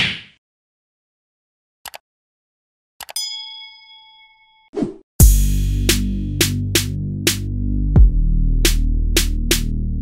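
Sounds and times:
notification bell chime: 0:03.2 - 0:04.7.

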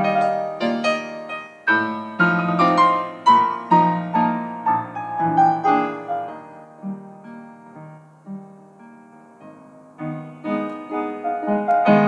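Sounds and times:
upright piano melody: 0:00.0 - 0:12.0.

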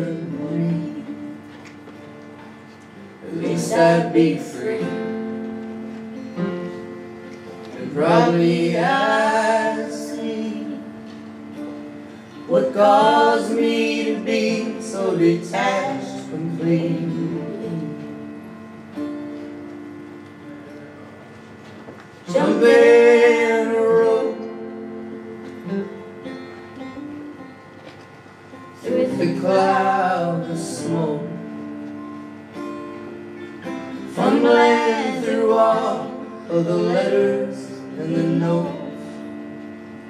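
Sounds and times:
acoustic guitar: 0:00.0 - 0:40.0
person singing: 0:28.8 - 0:31.5.

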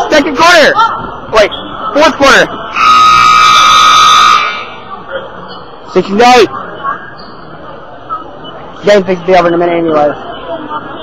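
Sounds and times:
scoreboard buzzer tone: 0:02.8 - 0:04.7.

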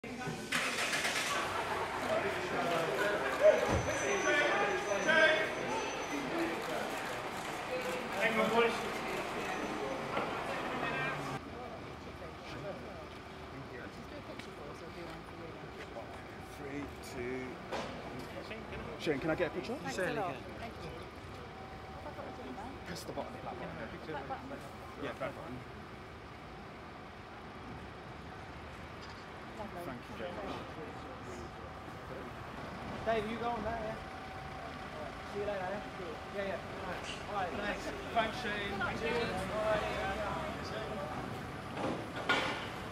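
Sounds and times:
city street background noise: 0:00.0 - 0:42.9
steady traffic noise: 0:00.0 - 0:42.9.

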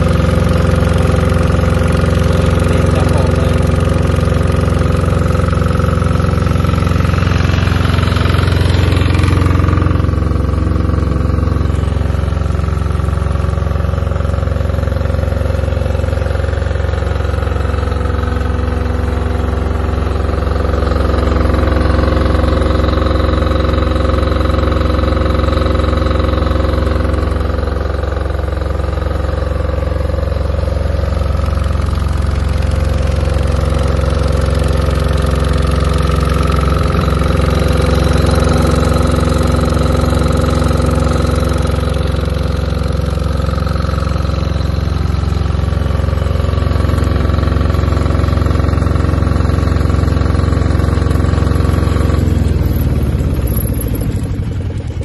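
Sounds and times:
diesel generator running: 0:00.0 - 0:55.0
engine clatter: 0:00.0 - 0:55.0.

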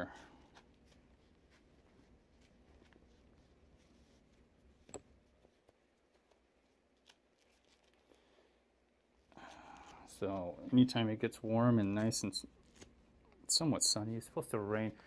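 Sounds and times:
gloves rustling: 0:00.0 - 0:13.4.

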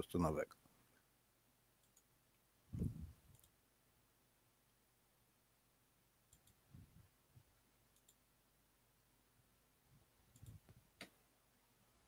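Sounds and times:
computer mouse clicks: 0:01.8 - 0:02.1, 0:02.8 - 0:03.6, 0:06.3 - 0:06.6, 0:07.9 - 0:08.2, 0:10.3 - 0:11.2
soft low bumps: 0:02.7 - 0:03.2.

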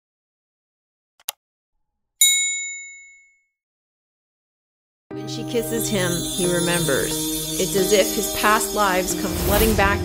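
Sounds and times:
metallic bell ding: 0:02.2 - 0:03.5.

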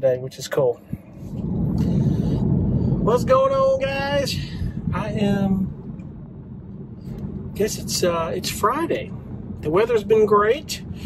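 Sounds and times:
car road noise rumble: 0:00.0 - 0:11.0.

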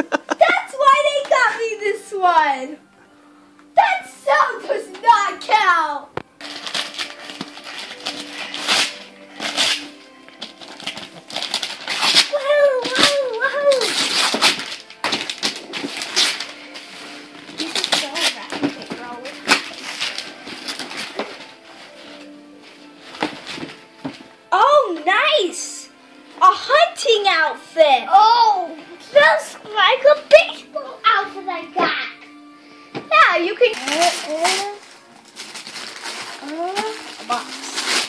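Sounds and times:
wrapping paper tearing: 0:06.4 - 0:23.9, 0:33.6 - 0:38.0.

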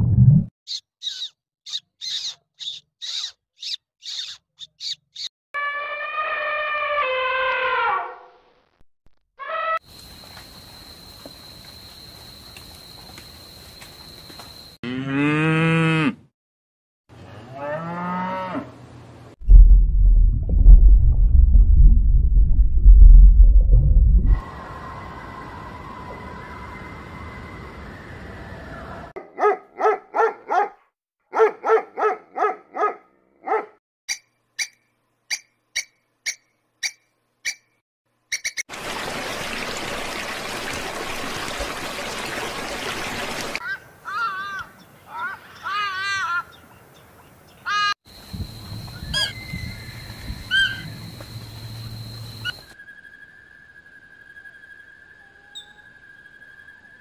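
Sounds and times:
short pulsed calls and clicks: 0:00.7 - 0:05.3
low rumbling growl: 0:19.4 - 0:24.4.

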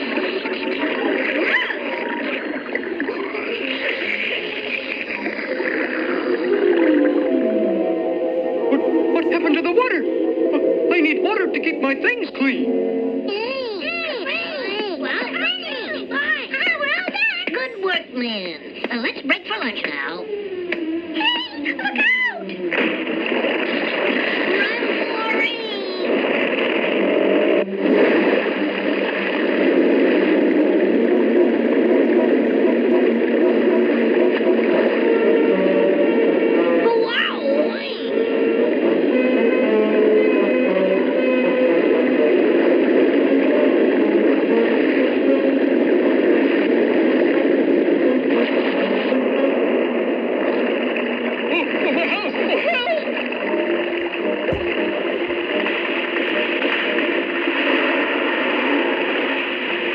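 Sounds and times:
rushing splashing water: 0:00.0 - 0:12.9, 0:21.8 - 0:36.9, 0:41.6 - 0:59.9
cartoon soundtrack music: 0:00.0 - 0:18.6, 0:19.5 - 0:59.9
sweeping pitch glides: 0:00.1 - 0:16.6.

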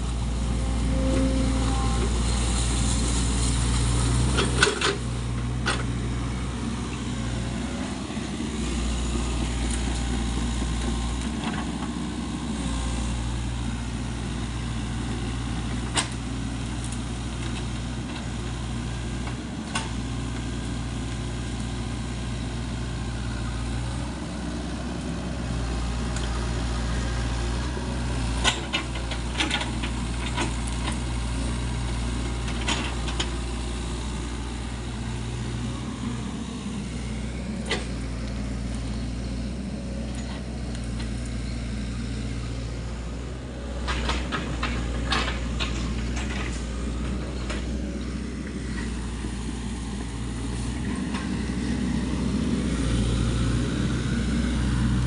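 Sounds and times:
excavator diesel engine running: 0:00.0 - 0:55.0.

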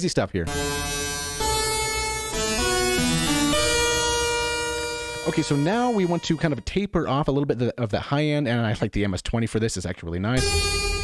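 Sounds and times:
dissonant synthesizer notes: 0:00.5 - 0:06.7, 0:10.4 - 0:11.0.

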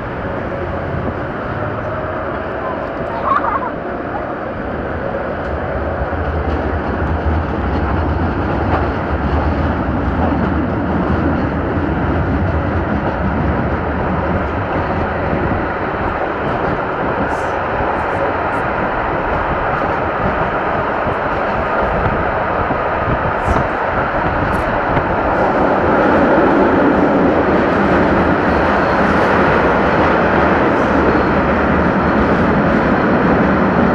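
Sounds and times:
tram wheels rumbling on track: 0:00.0 - 0:33.9.

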